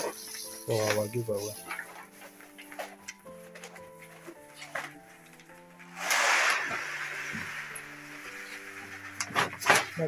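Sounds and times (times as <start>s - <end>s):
background music with held notes: 0.0s - 10.0s
plastic bag rustling: 0.0s - 10.0s
rice pouring into plastic bag: 5.9s - 10.0s.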